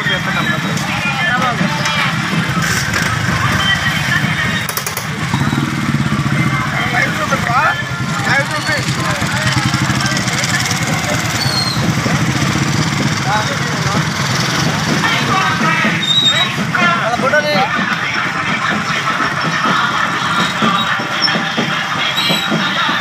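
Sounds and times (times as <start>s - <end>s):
motorcycle engines humming: 0.0s - 23.0s
people shouting: 14.6s - 23.0s.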